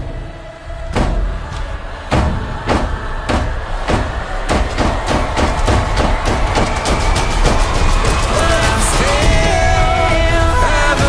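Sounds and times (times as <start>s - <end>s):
heavy trailer drum hits: 0.9s - 9.7s.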